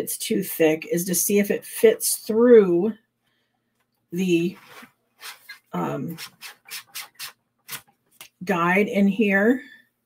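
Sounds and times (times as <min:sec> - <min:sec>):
card scraping plastic guide: 0:04.6 - 0:07.9.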